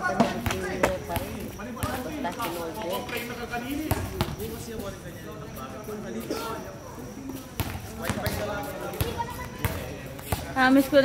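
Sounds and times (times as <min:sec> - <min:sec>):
people talking: 0:00.0 - 0:11.0
basketball bouncing on court: 0:00.2 - 0:02.1, 0:03.8 - 0:04.5, 0:07.6 - 0:10.6.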